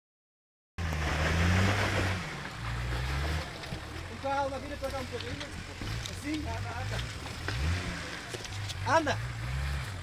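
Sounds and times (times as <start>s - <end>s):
off-road vehicle engine under load: 0.8s - 10.0s.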